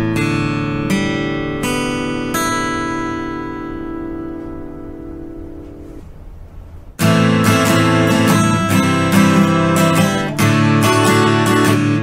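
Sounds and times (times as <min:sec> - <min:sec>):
acoustic guitar chord strummed: 0:00.0 - 0:06.4, 0:07.0 - 0:12.0.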